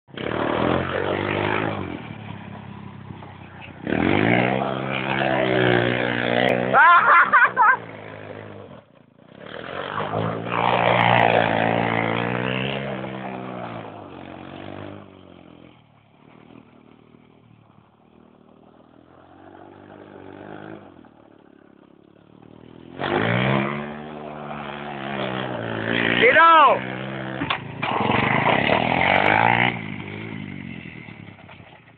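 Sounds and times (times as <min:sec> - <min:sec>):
go-kart engine revving: 0:00.1 - 0:31.9.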